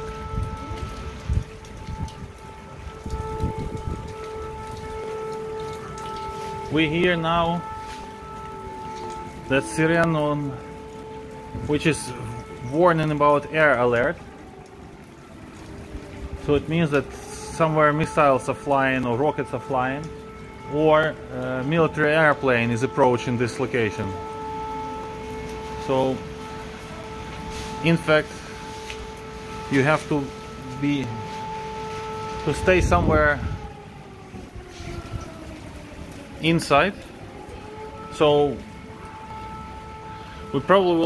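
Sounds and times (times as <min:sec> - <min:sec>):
faint air-raid siren: 0:00.0 - 0:41.0.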